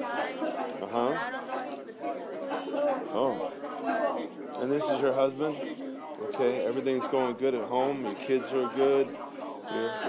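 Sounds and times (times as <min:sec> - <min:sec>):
soft talking: 0:00.0 - 0:10.0.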